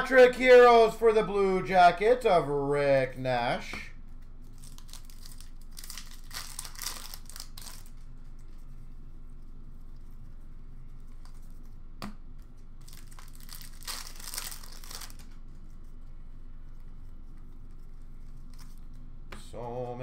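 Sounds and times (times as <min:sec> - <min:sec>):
cards rustling: 0:04.1 - 0:08.1, 0:12.8 - 0:15.8
wrappers crinkling and tearing: 0:04.4 - 0:08.6, 0:12.5 - 0:15.8.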